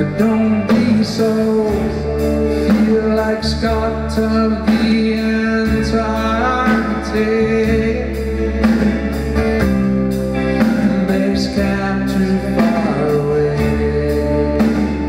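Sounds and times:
man singing: 0.0 - 9.4, 10.4 - 15.0
bass guitar: 0.0 - 15.0
drum kit with cymbal hits: 0.0 - 15.0.

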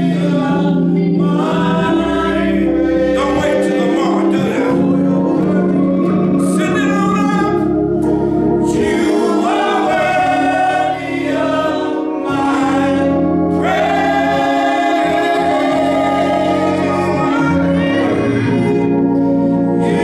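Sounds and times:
gospel choir singing: 0.0 - 20.0
organ accompaniment: 0.0 - 20.0.

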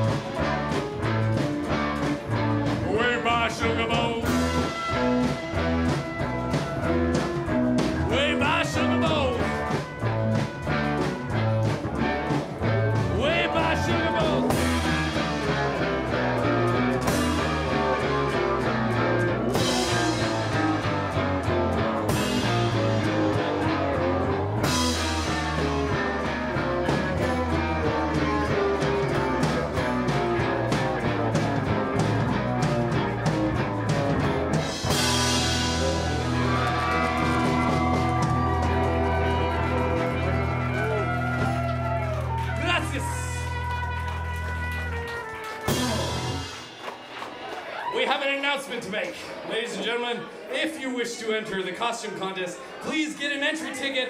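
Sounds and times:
rock band playing: 0.0 - 51.1.

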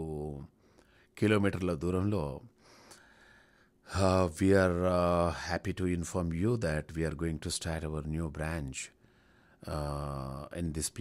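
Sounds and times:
man speaking: 0.0 - 0.5, 1.2 - 2.5, 3.9 - 9.0, 9.6 - 11.0
man inhaling: 2.6 - 3.8, 9.0 - 9.6.

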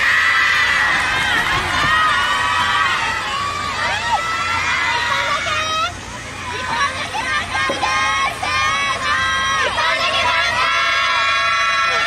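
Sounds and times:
girls shouting cheers: 6.5 - 12.0.

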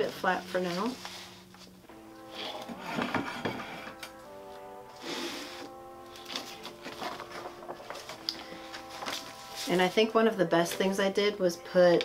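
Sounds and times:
soft background music: 0.0 - 12.0
fabric mat rustling: 0.5 - 1.8, 6.2 - 10.1.

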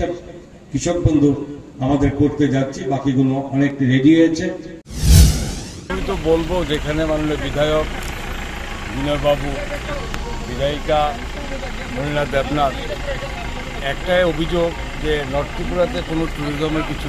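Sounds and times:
low engine-like rumble: 5.0 - 17.0.

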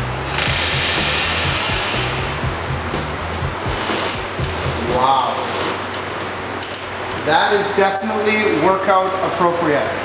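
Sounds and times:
background music with bass line: 0.0 - 5.4.

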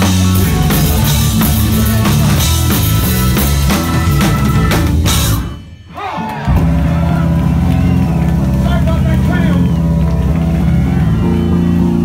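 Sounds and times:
live punk rock band: 0.0 - 12.0.

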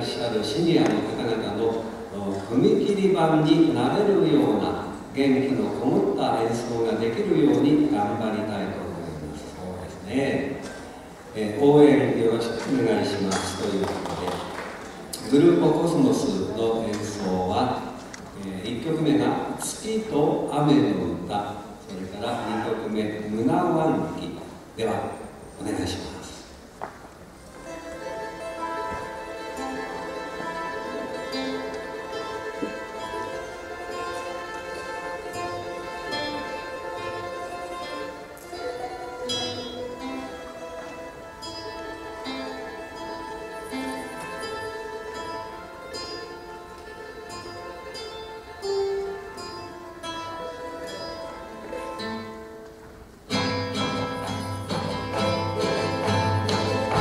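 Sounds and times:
plucked guitar and charango: 27.4 - 57.0
quenas playing: 53.3 - 57.0.

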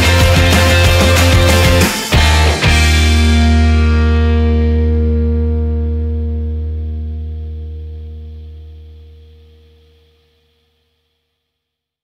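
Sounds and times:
distorted guitars and bass chord: 0.0 - 10.6.

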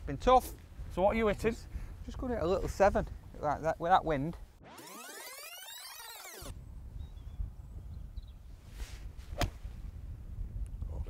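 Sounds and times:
wind rumbling on microphone: 6.5 - 11.0
golf club striking ball: 9.4 - 9.6.

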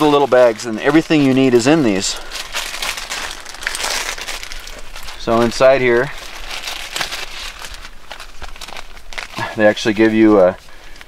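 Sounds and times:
plastic packets crinkling: 0.0 - 11.0.

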